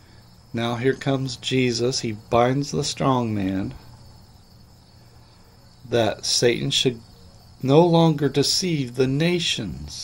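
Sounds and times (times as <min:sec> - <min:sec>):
man speaking: 0:00.5 - 0:04.0, 0:05.8 - 0:10.0.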